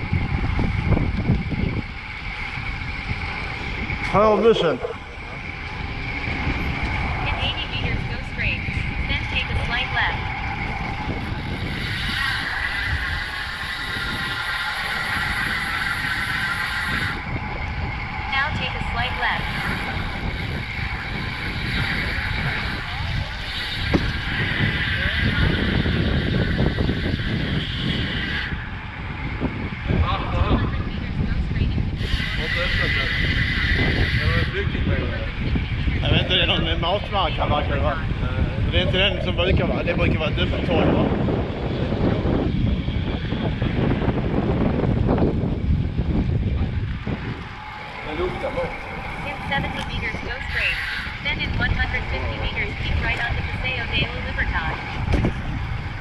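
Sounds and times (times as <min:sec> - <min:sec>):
road traffic: 0:00.0 - 0:56.0
wind rumbling on microphone: 0:00.0 - 0:56.0.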